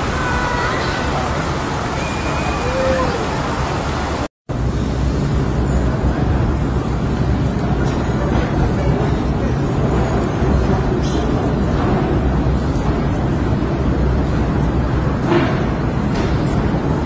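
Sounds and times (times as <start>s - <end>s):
city background rumble: 0.0s - 17.0s.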